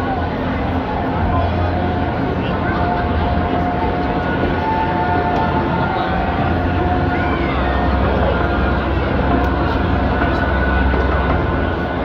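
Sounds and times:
low rumble over loudspeakers: 0:00.0 - 0:12.0.

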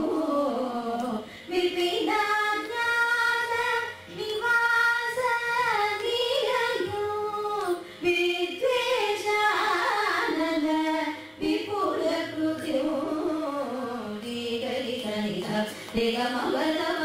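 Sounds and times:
two women singing: 0:00.0 - 0:17.0.

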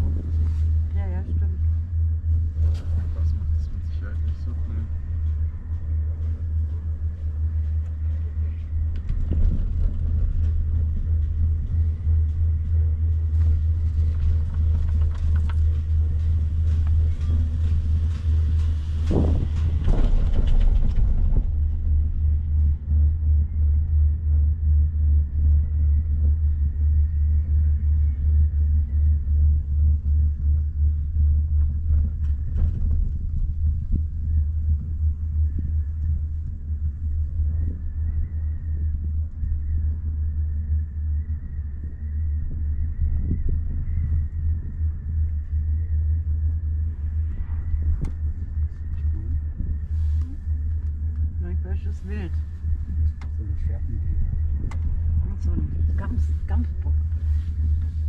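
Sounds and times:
wind buffeting microphone: 0:00.0 - 0:58.0.

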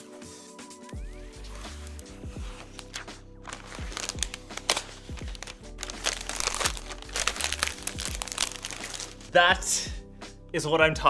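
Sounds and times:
background music: 0:00.0 - 0:11.0
plastic film crinkling: 0:01.8 - 0:09.4.

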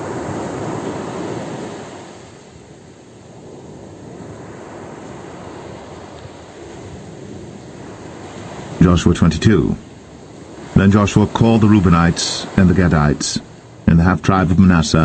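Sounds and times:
ocean surf washing ashore: 0:00.0 - 0:15.0.

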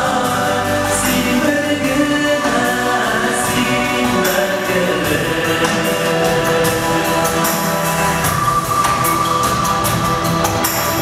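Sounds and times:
men singing in harmony: 0:00.0 - 0:09.0
musical backing: 0:00.0 - 0:11.0.

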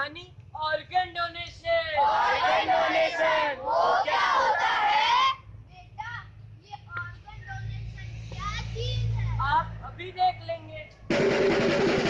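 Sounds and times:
children calling out: 0:02.0 - 0:05.4.

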